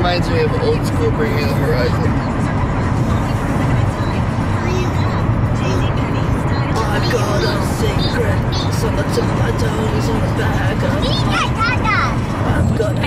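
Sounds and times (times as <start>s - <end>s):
car road and engine rumble: 0.0s - 13.0s
faint voices: 0.0s - 13.0s.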